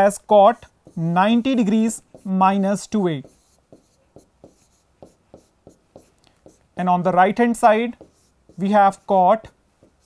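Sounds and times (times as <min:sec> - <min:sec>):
chalk scraping on chalkboard: 0:00.0 - 0:10.0.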